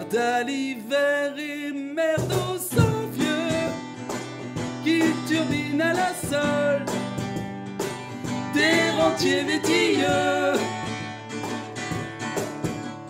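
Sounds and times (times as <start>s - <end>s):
man singing: 0.0s - 3.8s, 4.8s - 7.0s, 8.5s - 10.9s
acoustic guitar strumming: 2.0s - 13.0s
cajon percussion: 2.2s - 13.0s.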